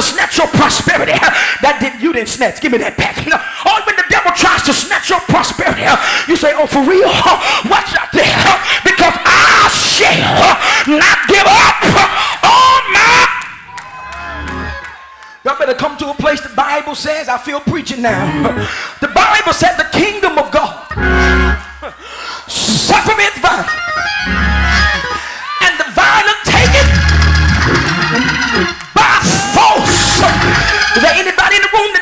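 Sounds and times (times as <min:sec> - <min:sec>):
person preaching: 0:00.0 - 0:13.5, 0:15.4 - 0:20.9, 0:22.3 - 0:23.8, 0:25.1 - 0:27.2, 0:28.8 - 0:32.0
man shouting: 0:06.8 - 0:13.5, 0:18.1 - 0:19.6, 0:25.4 - 0:27.0, 0:28.9 - 0:32.0
church band with organ: 0:20.8 - 0:25.6, 0:26.5 - 0:31.7
soft church music: 0:20.9 - 0:22.8, 0:23.7 - 0:25.2
long held cry: 0:29.0 - 0:30.9.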